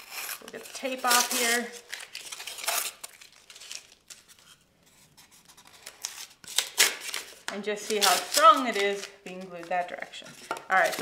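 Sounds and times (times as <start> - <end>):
tape tearing: 0.0 - 4.6, 5.5 - 11.0.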